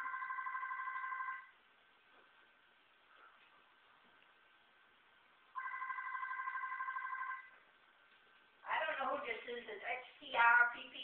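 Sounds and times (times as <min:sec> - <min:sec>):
electronic telephone ringer warbling: 0:00.0 - 0:01.5, 0:05.6 - 0:07.5.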